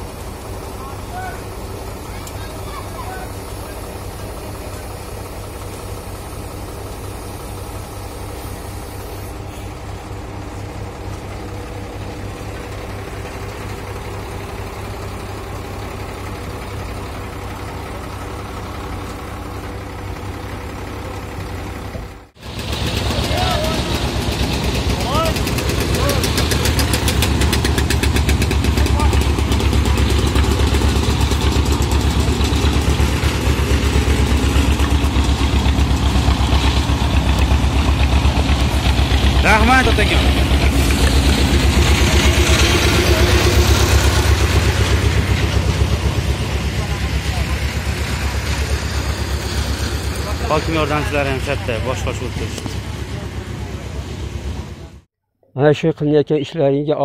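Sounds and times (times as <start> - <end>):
paver and truck engines running: 0.0 - 55.1
road roller engine driving past: 0.0 - 55.1.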